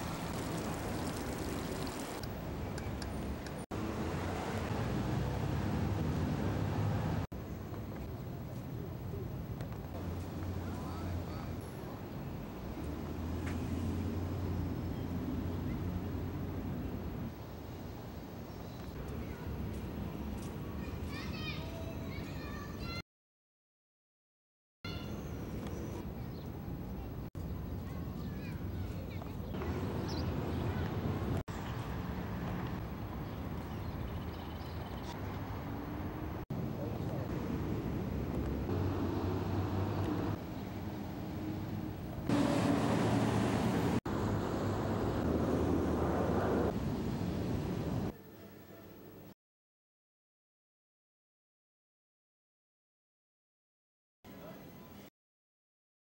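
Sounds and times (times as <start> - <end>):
distant traffic rumble: 0.0 - 23.0, 24.9 - 48.1
street noise: 0.0 - 23.0, 24.9 - 49.3.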